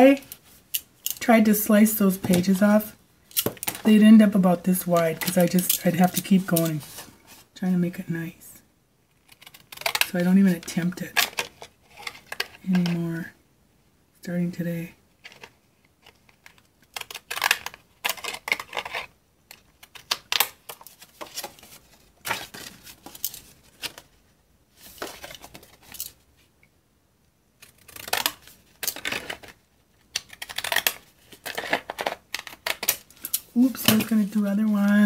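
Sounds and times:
paper rustling: 19.8s - 26.2s.

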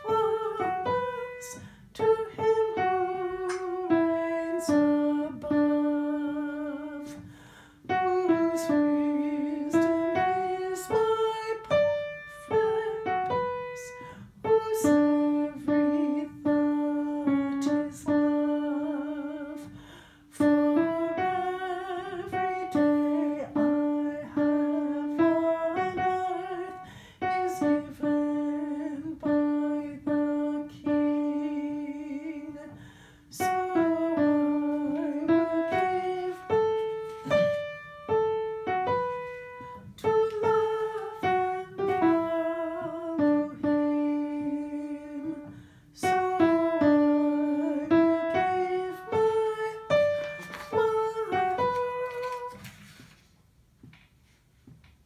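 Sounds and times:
upright piano playing hymn chords: 0.0s - 52.6s
person humming held notes: 33.4s - 52.7s.

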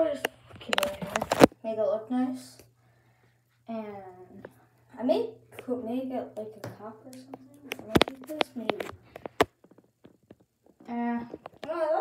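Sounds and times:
person speaking: 0.0s - 2.7s, 3.7s - 9.6s, 10.8s - 12.0s.

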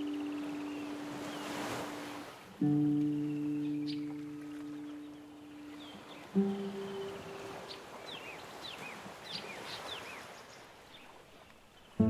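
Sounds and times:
bird chirping: 3.0s - 11.1s.

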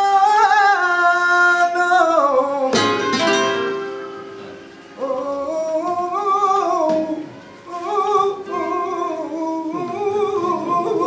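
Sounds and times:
man singing long wavering notes: 5.0s - 11.0s.

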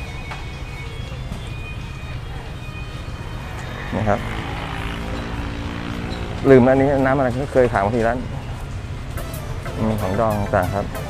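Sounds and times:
person speaking: 9.3s - 11.0s.

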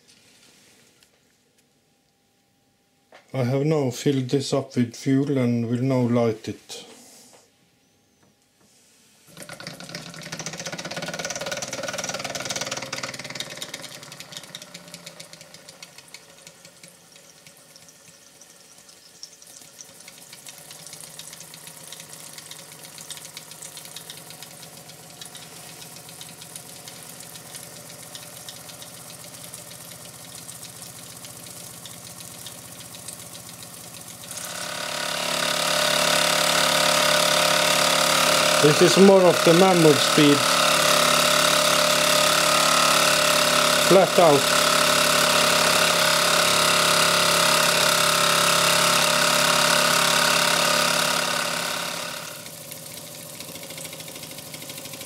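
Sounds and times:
toy steam engine hissing and ticking: 9.6s - 55.0s.

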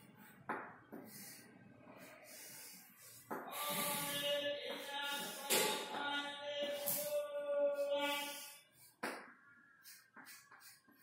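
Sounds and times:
chalk scratching on blackboard: 0.0s - 5.6s, 6.6s - 11.0s.

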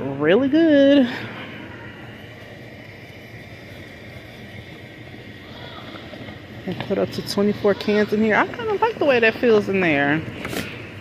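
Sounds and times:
warehouse room tone hum and hiss: 0.0s - 11.0s.

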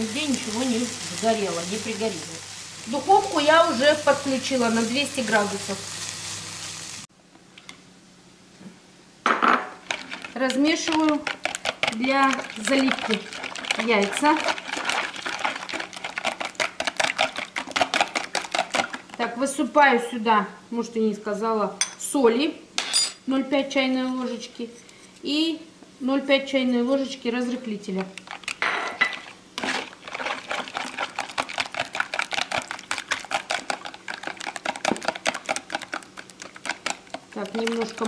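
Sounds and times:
whisk clicking against bowl: 9.9s - 19.1s, 30.5s - 38.0s.

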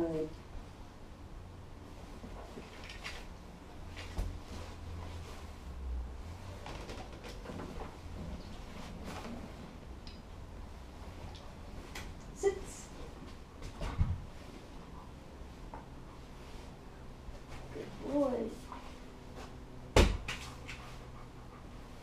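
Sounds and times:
low room rumble: 0.0s - 22.0s
wheelchair rolling on hardwood floor: 2.2s - 9.9s.

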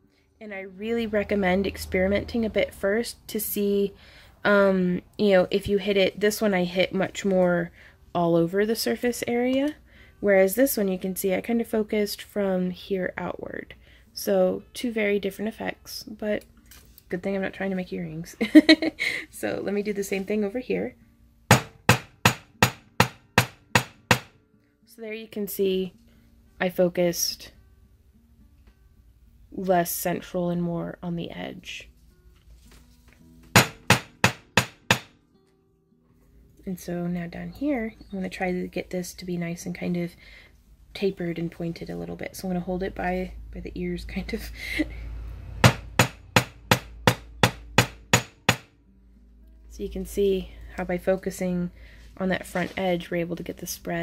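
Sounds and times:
hammer striking wire on anvil: 21.5s - 24.4s, 33.5s - 35.1s, 45.6s - 48.7s.

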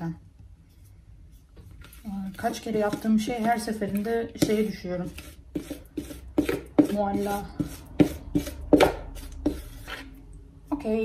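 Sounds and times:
spatula scraping plastic bowl: 1.4s - 10.3s.

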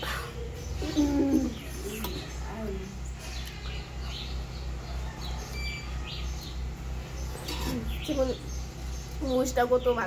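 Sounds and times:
low cooing: 0.0s - 2.3s
birds calling: 0.0s - 10.0s.

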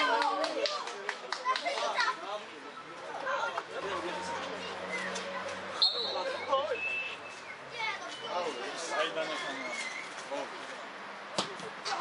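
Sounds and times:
spectators chattering: 0.0s - 12.0s
referee's whistle blast: 5.8s - 7.3s.

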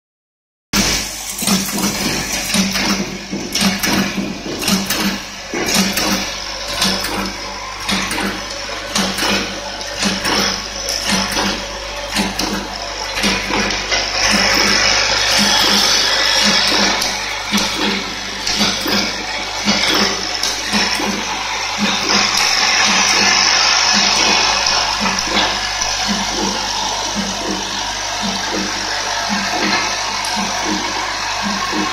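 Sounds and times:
machine clicks: 0.8s - 31.9s
packing machine running: 0.8s - 31.9s
low mechanical pulse: 1.4s - 31.9s.

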